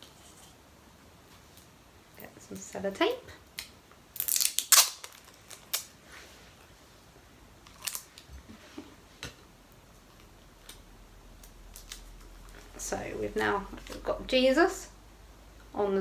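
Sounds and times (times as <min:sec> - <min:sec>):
tape ripping off roll: 0:04.1 - 0:06.0.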